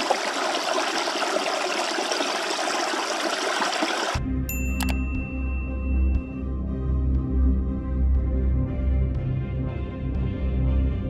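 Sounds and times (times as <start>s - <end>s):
stream running over rocks: 0.0s - 4.2s
soft ambient music: 4.2s - 11.0s.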